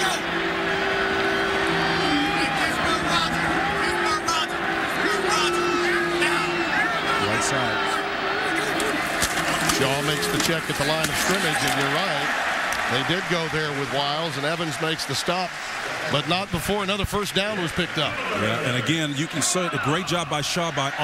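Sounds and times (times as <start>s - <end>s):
crowd yelling: 0.0s - 21.0s.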